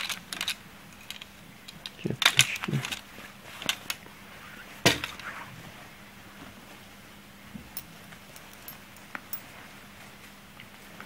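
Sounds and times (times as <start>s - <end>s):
clothes being handled: 2.2s - 7.0s.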